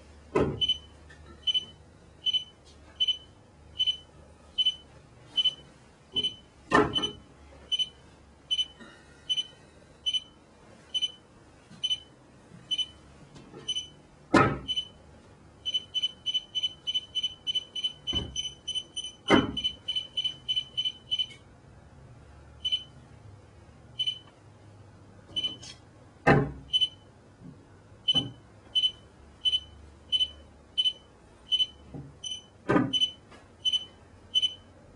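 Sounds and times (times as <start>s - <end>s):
phone app beeping: 7.0s - 9.5s, 15.7s - 21.4s, 26.7s - 27.0s, 28.1s - 34.6s.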